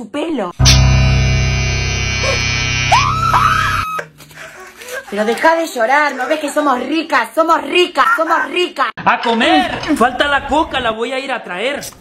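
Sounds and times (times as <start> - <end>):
electric shaver buzzing: 0.6 - 3.8
voice wailing: 2.2 - 4.1.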